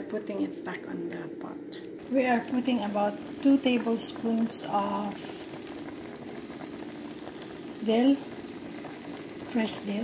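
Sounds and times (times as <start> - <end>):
steady low hum: 0.0 - 10.0
faint fine crackle: 1.8 - 10.0
rice simmering in a pot: 2.0 - 10.0.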